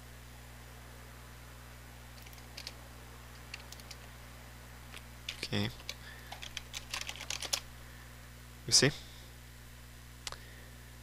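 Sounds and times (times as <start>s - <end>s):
keyboard keystroke clicks: 2.2s - 2.8s, 3.4s - 4.0s, 5.3s - 7.6s.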